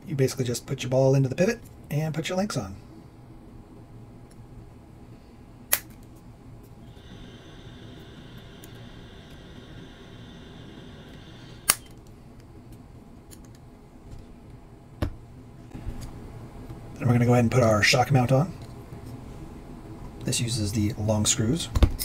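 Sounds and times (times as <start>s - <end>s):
faint steady high whine: 0.0s - 22.0s
sharp plastic snaps: 5.7s - 6.1s.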